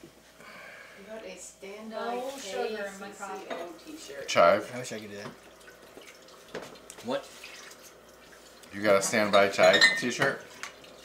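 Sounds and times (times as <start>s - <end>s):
glassware clinking: 9.0s - 10.4s.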